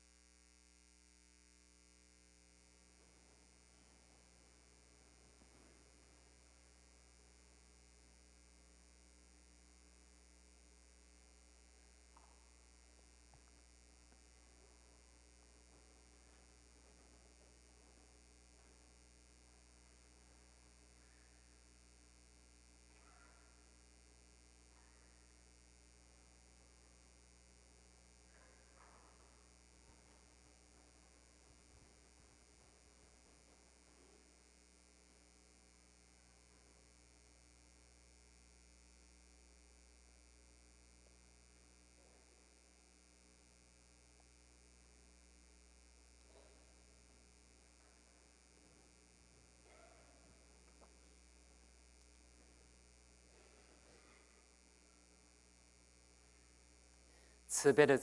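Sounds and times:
low electrical hum: 0.0 - 58.0.

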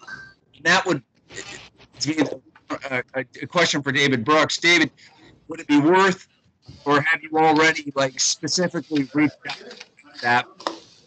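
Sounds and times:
halting speech: 0.0 - 4.9, 5.5 - 6.2, 6.8 - 10.9.

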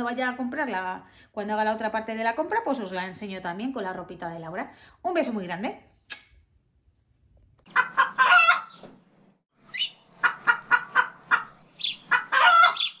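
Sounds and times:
chicken clucking: 7.7 - 8.8, 9.7 - 13.0
rooster crowing: 8.0 - 8.7, 12.1 - 12.9.

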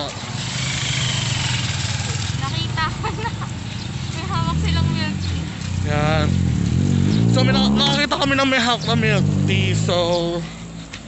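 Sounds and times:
vehicle engine passing: 0.0 - 11.0.

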